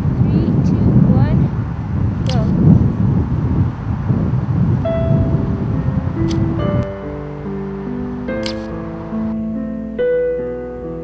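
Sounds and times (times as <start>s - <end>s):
wind noise on microphone: 0.0s - 10.1s
slow piano chords: 4.3s - 11.0s.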